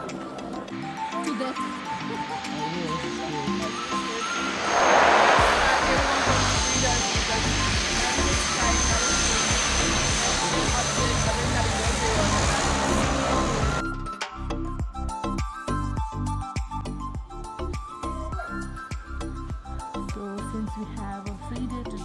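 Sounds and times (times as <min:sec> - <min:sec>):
music: 0:00.0 - 0:22.0
propeller plane engines: 0:00.1 - 0:13.8.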